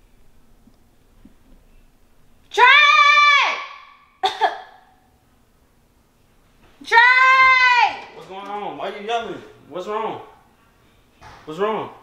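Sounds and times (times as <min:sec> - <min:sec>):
woman yelling: 0:02.5 - 0:03.9, 0:06.8 - 0:08.2.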